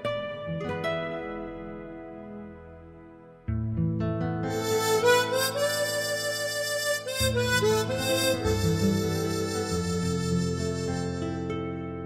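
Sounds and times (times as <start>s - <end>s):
backing track of bass and chords: 0.0s - 12.0s
harmonica melody: 4.5s - 11.6s.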